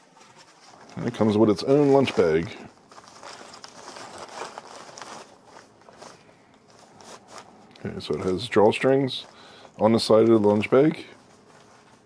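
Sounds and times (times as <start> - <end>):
cloth bag rustling and crinkling: 0.0 - 12.0.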